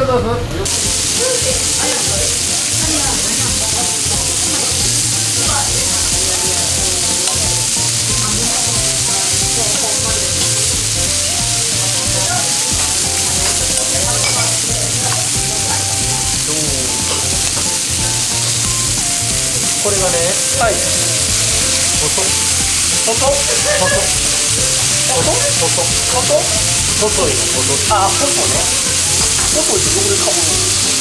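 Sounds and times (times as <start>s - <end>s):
meat sizzling on a griddle: 0.6s - 31.0s.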